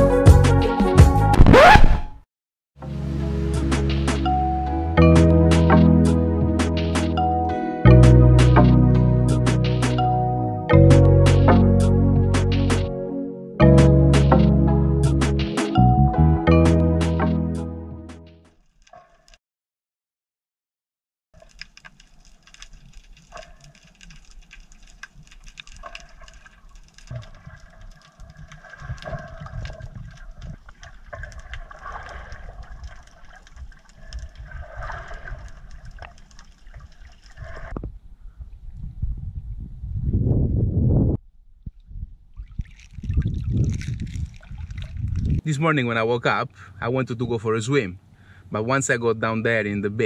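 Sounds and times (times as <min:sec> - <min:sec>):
underwater crackling clicks: 0:21.4 - 0:37.9
water sloshing and splashing: 0:21.4 - 0:37.9, 0:41.6 - 0:45.4.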